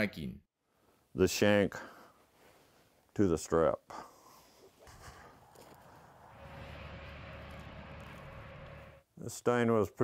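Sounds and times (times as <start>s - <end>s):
outdoor background noise: 4.7s - 9.0s
faint hum: 4.9s - 9.0s.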